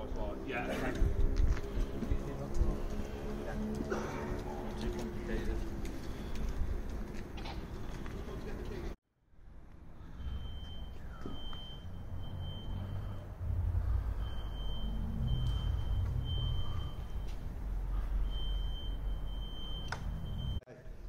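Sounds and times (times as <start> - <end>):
low rumbling drone: 0.0 - 7.8, 9.3 - 20.6
electronic alarm beeping: 10.0 - 20.6.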